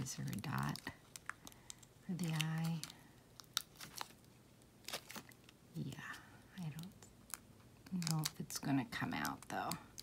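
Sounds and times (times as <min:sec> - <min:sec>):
paper crinkling: 0:00.0 - 0:05.6.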